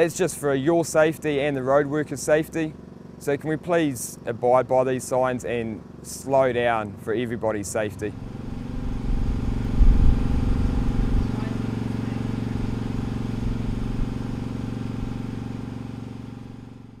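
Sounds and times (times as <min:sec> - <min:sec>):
engine running steadily: 0:00.0 - 0:17.0
low rumble: 0:08.1 - 0:14.2.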